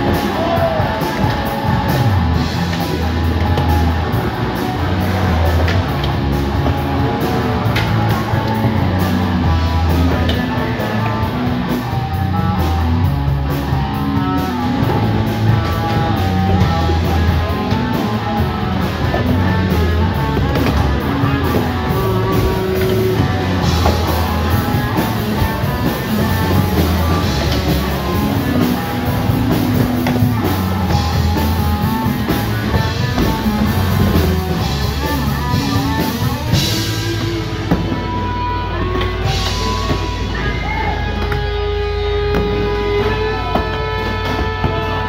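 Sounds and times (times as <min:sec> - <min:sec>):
rock music: 0:00.0 - 0:45.0.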